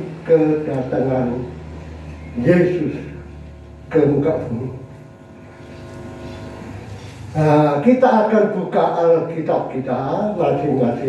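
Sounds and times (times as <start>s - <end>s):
low room hum and rumble: 0.0s - 11.0s.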